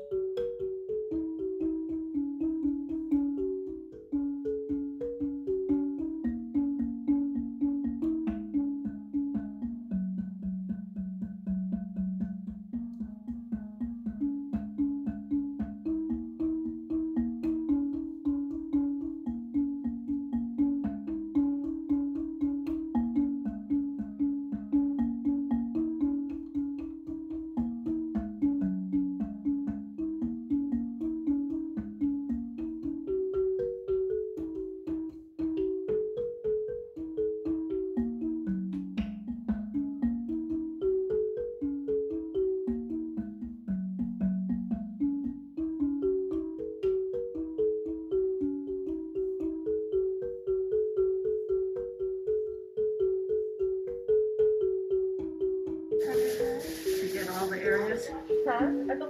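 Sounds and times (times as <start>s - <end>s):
marimba music: 0.0s - 59.0s.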